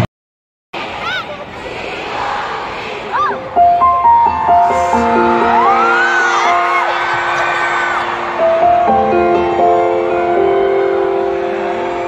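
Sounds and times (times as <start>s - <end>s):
piano chord ringing: 3.6s - 12.0s.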